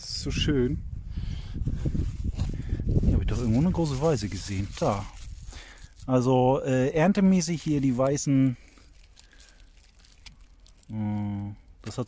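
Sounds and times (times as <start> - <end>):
leaves and grass rustling: 1.6 - 12.0.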